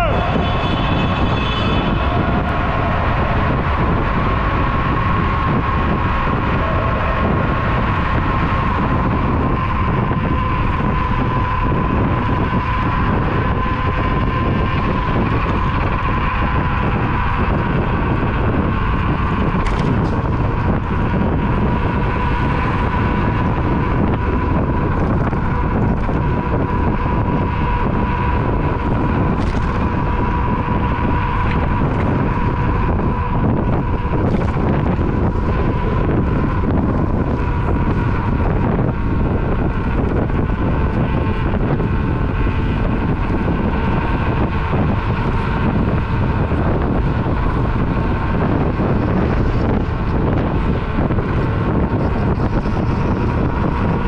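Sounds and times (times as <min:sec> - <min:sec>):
road noise: 0:00.0 - 0:54.0
steady high whine: 0:00.0 - 0:54.0
wind rushing over microphone: 0:00.0 - 0:54.0.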